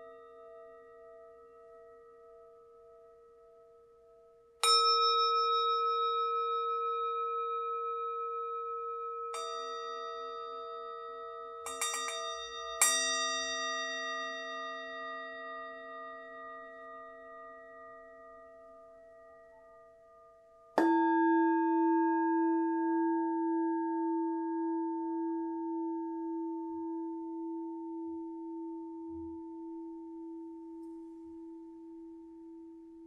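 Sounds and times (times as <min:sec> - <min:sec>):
singing bowl struck with mallet: 0:04.6 - 0:10.9, 0:20.8 - 0:24.1.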